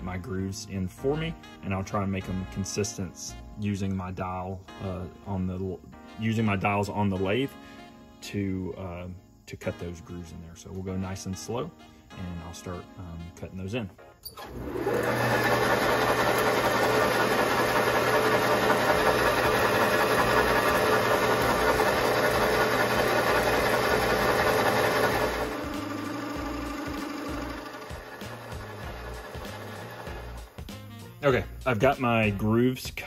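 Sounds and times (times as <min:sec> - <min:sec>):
metal lathe cutting brass: 0:14.4 - 0:30.6.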